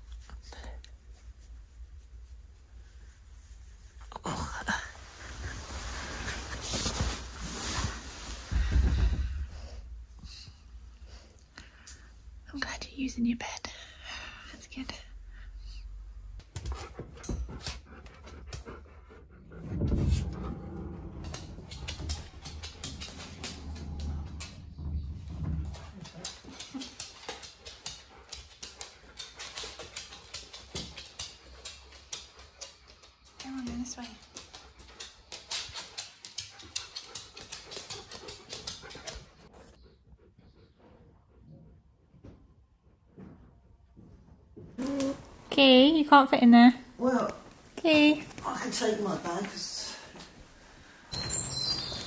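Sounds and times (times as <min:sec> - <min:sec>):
dog panting: 0:16.4 - 0:24.6, 0:25.6 - 0:42.3
small clicks and rustles: 0:20.1 - 0:39.6.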